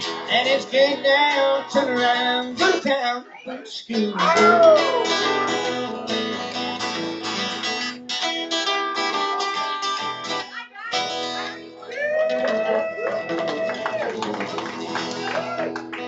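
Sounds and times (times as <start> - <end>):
acoustic guitars strumming: 0.0 - 16.0.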